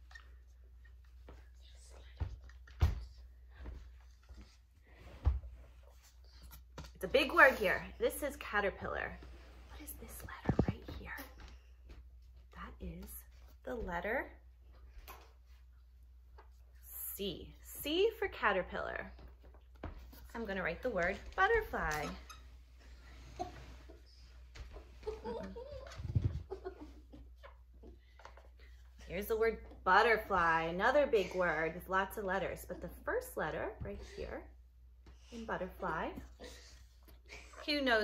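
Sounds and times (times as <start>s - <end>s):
quiet whispering: 1.1s - 3.5s, 9.6s - 11.6s.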